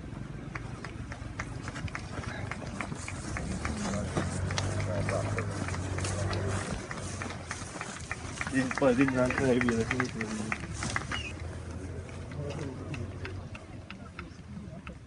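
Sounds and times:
people talking: 1.8s - 15.0s.

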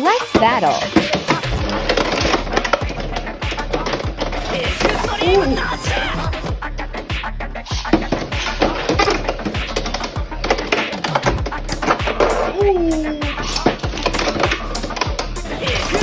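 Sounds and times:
background music with beat: 0.0s - 16.0s.

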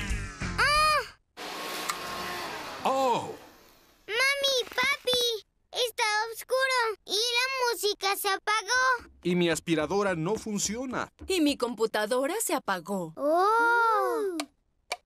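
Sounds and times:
music: 0.0s - 0.7s, 9.1s - 12.0s
cartoon vacuum cleaner whirring: 1.4s - 4.9s.

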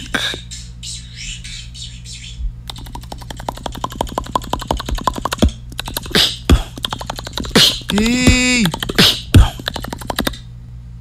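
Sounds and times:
beatboxer tongue clicks: 0.0s - 0.5s, 2.6s - 10.5s.

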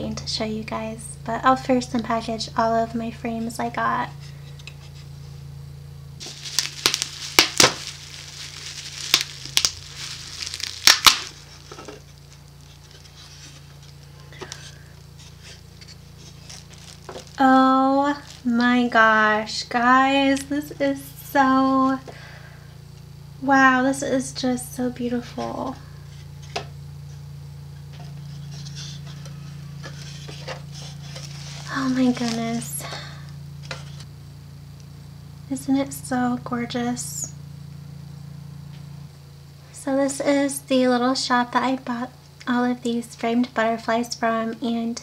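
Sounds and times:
steady low hum: 0.0s - 45.0s
packaging crinkling and tearing: 6.2s - 18.6s, 30.0s - 32.7s
plastic rustling: 6.2s - 19.2s, 27.8s - 34.1s.

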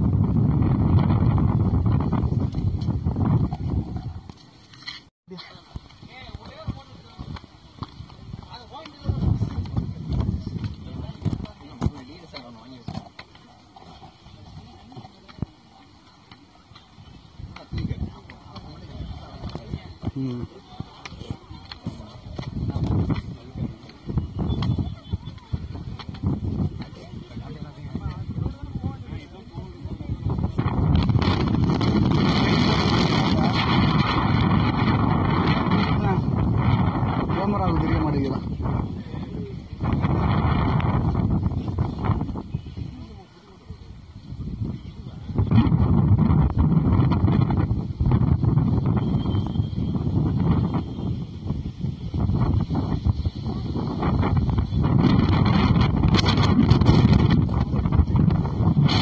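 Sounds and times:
microphone handling noise: 0.0s - 15.6s, 17.0s - 43.1s, 44.2s - 59.0s
low voices: 5.3s - 59.0s.

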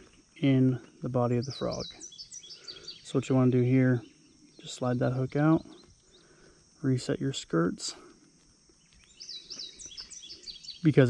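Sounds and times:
faint outdoor background: 0.0s - 11.0s
songbird chirping: 0.0s - 11.0s.

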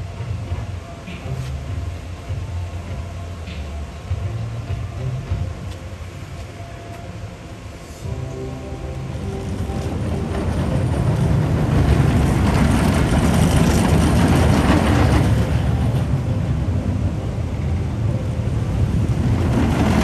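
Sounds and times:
faint background music: 0.0s - 20.0s
roller coaster rumbling on track: 0.0s - 20.0s.

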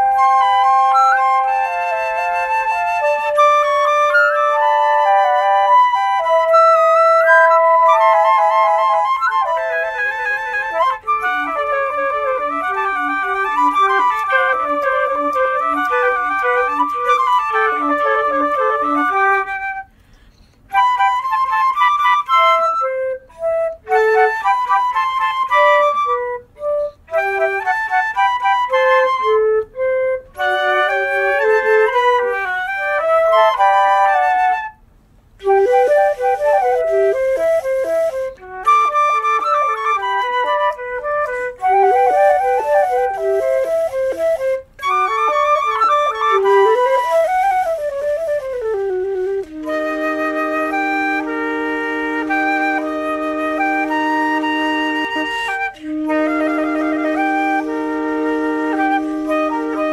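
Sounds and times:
chamber music ensemble: 0.0s - 59.9s.

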